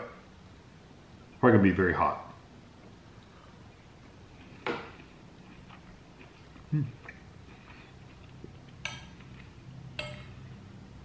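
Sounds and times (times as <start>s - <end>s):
metal fork clinking on plate: 10.0s - 10.4s.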